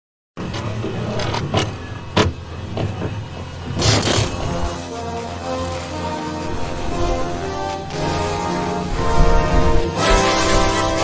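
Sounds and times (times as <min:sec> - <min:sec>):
motor whirring: 0:00.4 - 0:11.0.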